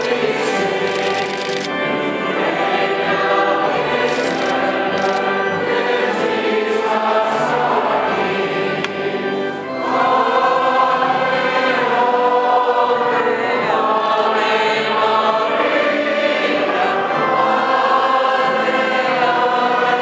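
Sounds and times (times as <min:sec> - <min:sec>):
choir singing a hymn: 0:00.0 - 0:20.0.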